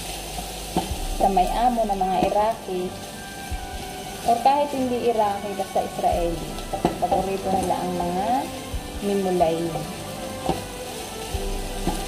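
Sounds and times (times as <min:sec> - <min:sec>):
background music: 0:00.0 - 0:12.0
chicken and onions sizzling: 0:00.0 - 0:12.0.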